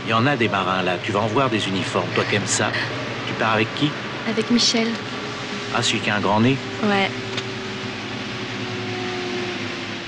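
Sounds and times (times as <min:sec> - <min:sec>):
bus running noise: 0:00.0 - 0:10.0
faint steady hum: 0:00.0 - 0:10.0.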